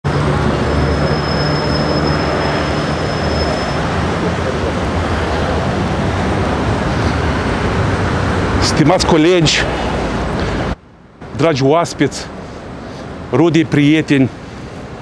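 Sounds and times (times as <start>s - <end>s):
low rumble of traffic: 0.0s - 15.0s.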